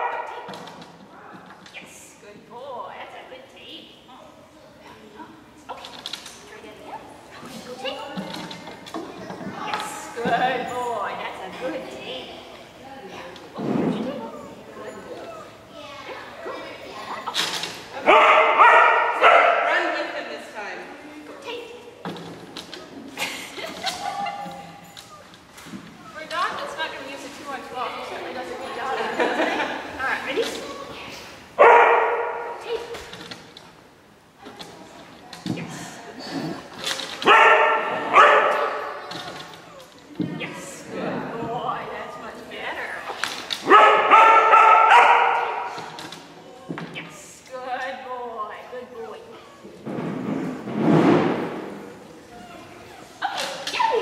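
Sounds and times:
dog barking loudly: 18.0s - 19.8s, 31.6s - 32.5s, 37.2s - 38.9s, 43.6s - 45.7s.

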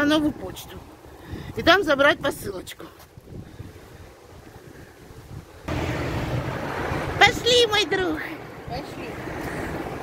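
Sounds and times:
wind on phone microphone: 1.2s - 7.2s
road traffic: 3.0s - 10.0s.

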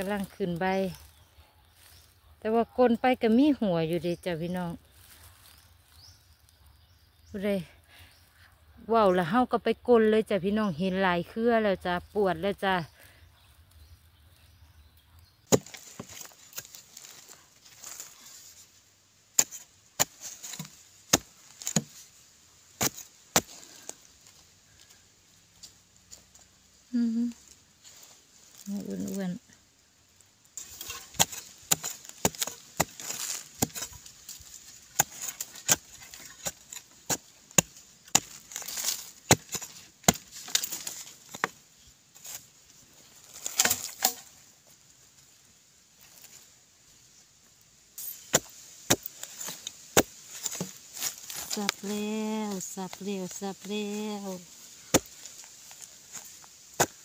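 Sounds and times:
digging tool chopping ground: 15.5s - 18.1s, 19.3s - 22.1s, 22.8s - 24.4s, 30.6s - 41.6s, 43.2s - 44.4s, 48.0s - 57.0s.

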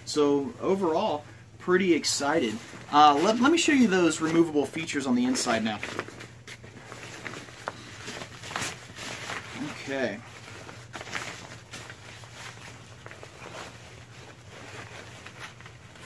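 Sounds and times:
nylon fabric rustling: 0.0s - 16.0s.

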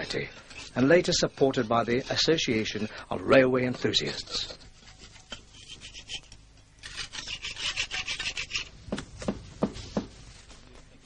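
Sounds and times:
hand tool rasping on wood: 6.9s - 8.7s.

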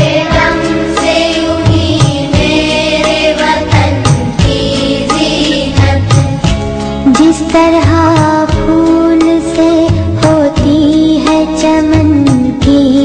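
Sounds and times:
low drum beats: 0.0s - 9.1s.

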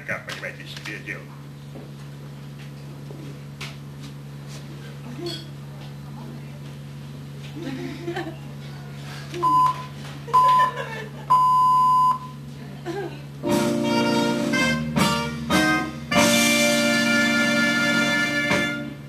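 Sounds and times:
recorded music chords: 13.4s - 19.0s.

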